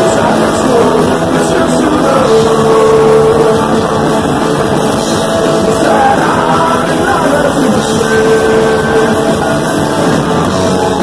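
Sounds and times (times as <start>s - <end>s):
punk rock band playing live: 0.0s - 11.0s.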